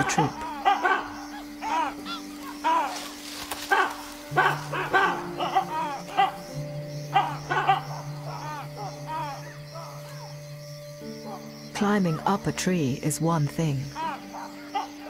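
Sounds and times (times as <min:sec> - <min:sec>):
baboons barking alarm calls: 0:00.0 - 0:15.0
droning music: 0:00.0 - 0:15.0.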